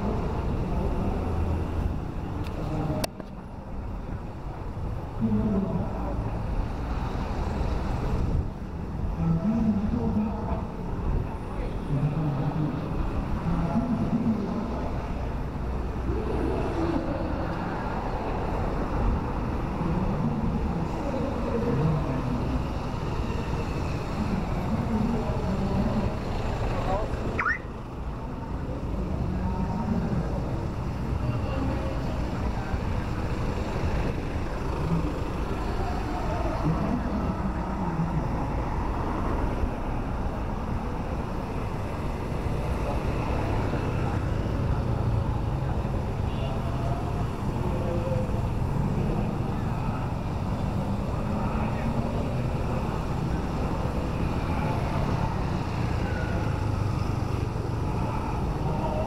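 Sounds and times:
street traffic passing: 0:00.0 - 0:59.0
voices: 0:00.0 - 0:59.0.

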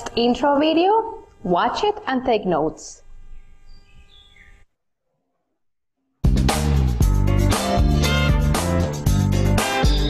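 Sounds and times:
faint background hum: 0:00.0 - 0:04.7.

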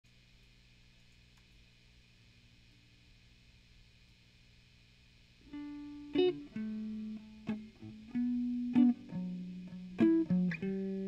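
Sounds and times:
faint low hum: 0:00.1 - 0:11.0
electric guitar note ringing: 0:05.5 - 0:11.0.

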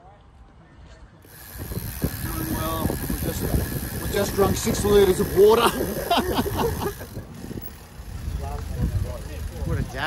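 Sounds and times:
wind rumble on microphone: 0:01.4 - 0:10.0
man laughing: 0:05.4 - 0:07.2.

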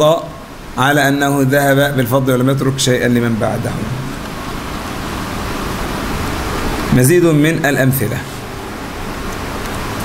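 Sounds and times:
room and microphone hiss: 0:00.0 - 0:10.0.

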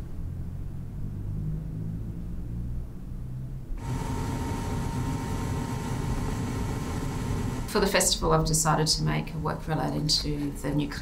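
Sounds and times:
low drone: 0:01.9 - 0:08.1
faint steady whine: 0:03.6 - 0:11.0
gas burner roaring: 0:03.8 - 0:08.1.

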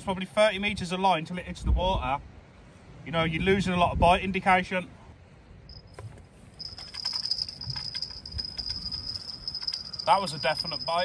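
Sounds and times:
fishing reel whirring and ticking: 0:06.6 - 0:11.0.

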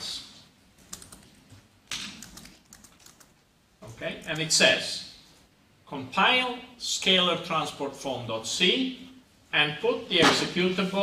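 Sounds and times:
laptop keyboard typing: 0:00.9 - 0:03.3.

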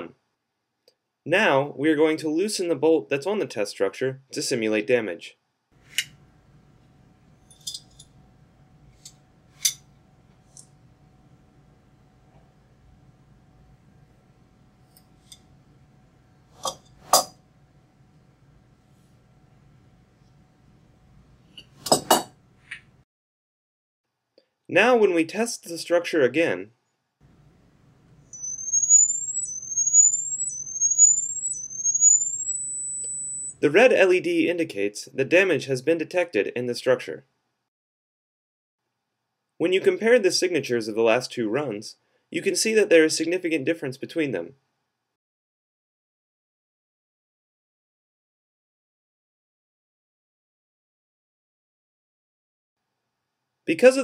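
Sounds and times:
thin high rising tone sweeps: 0:28.3 - 0:33.5.

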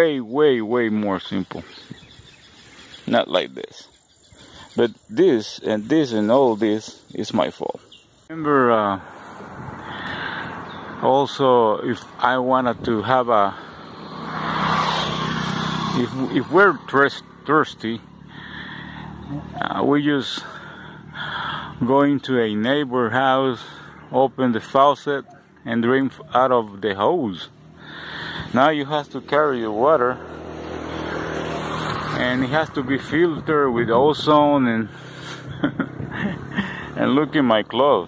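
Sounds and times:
small motorcycle passing: 0:00.6 - 0:04.7, 0:08.5 - 0:21.8, 0:22.5 - 0:38.0
wind rushing: 0:09.0 - 0:10.0.

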